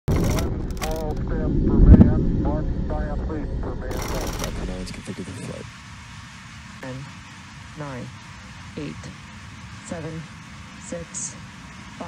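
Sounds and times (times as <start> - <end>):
person speaking: 0.0 - 5.8
low rumble: 0.0 - 11.5.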